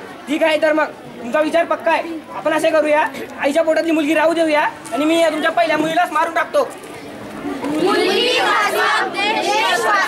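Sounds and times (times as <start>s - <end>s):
young voices shouting in unison: 7.7s - 10.0s.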